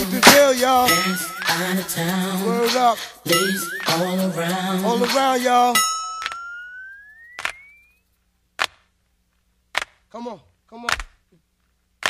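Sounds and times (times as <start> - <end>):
song backing music: 0.0 - 6.6
note gliding upward: 6.0 - 7.9.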